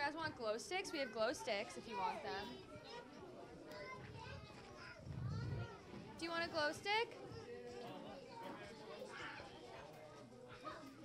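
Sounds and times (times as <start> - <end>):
chatter of children and adults: 0.0 - 11.0.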